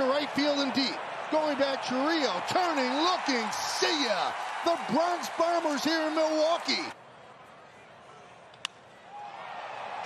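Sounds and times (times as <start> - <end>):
faint ballpark crowd noise: 0.0 - 10.0.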